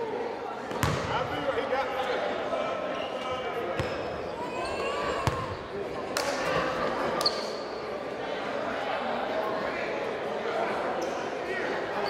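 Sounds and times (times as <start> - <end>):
echoing chatter of voices: 0.0 - 12.0
basketball bouncing on hardwood: 0.8 - 1.1.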